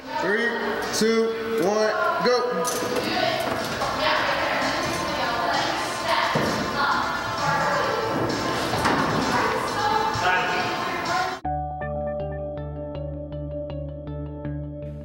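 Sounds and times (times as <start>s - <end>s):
echoing voices: 0.0s - 11.4s
background music: 0.0s - 15.0s.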